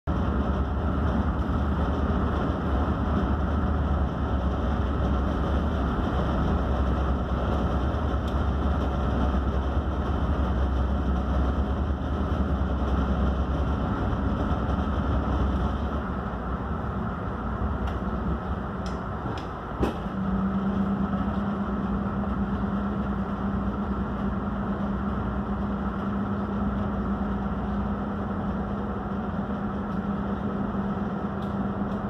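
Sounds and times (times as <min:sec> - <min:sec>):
boat engine droning: 0:00.1 - 0:32.0.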